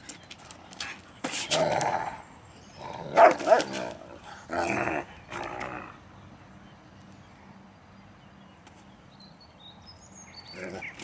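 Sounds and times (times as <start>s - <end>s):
dog growling: 2.8s - 6.0s
dog barks: 3.1s - 3.8s.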